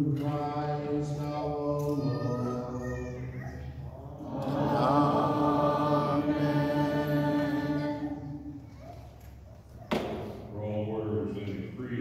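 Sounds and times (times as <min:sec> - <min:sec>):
liturgical chant: 0:00.0 - 0:08.6.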